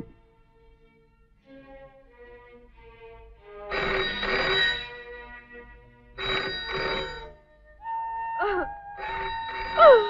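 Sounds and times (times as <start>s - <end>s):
faint background music: 0.0s - 10.0s
telephone bell ringing: 3.7s - 5.1s, 6.2s - 7.4s, 9.0s - 10.0s.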